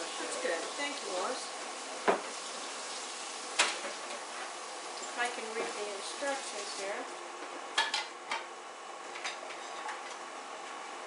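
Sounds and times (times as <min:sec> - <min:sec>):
kitchenware clicks and taps: 0:07.8 - 0:08.5.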